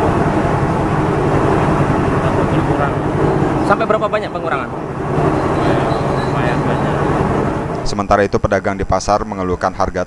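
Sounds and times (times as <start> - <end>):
vehicle engine running: 0.0 - 8.1.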